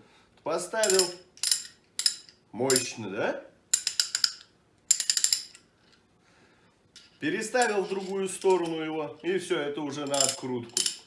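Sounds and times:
hand ratchet clicking: 0:00.8 - 0:02.9, 0:03.7 - 0:05.6, 0:10.0 - 0:11.0.

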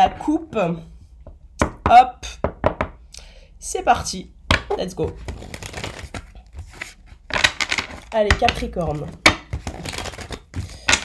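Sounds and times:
cards riffle-shuffled: 0:05.1 - 0:08.1, 0:08.8 - 0:11.0.

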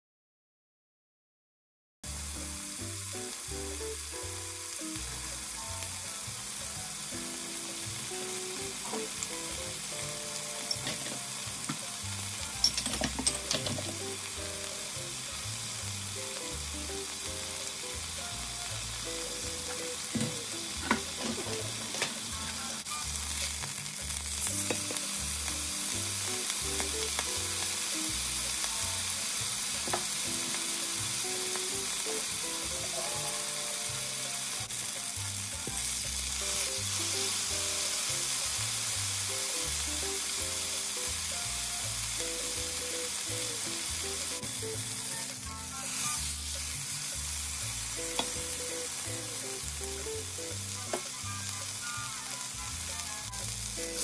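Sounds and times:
meat sizzling in a frying pan: 0:02.0 - 0:54.0.

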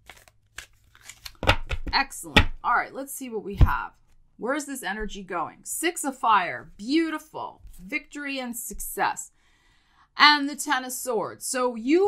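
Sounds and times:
card flicks and rustles: 0:00.0 - 0:02.0.

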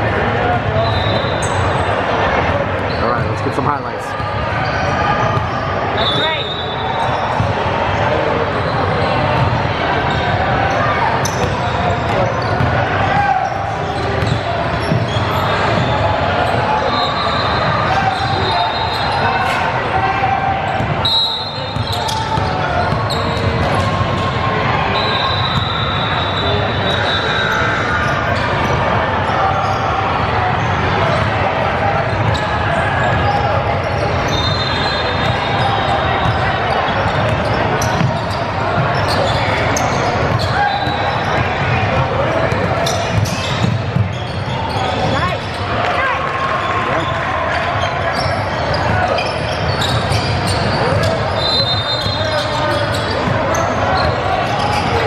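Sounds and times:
sneakers squeaking on floor: 0:00.7 - 0:02.0, 0:02.8 - 0:07.8, 0:08.4 - 0:55.0.

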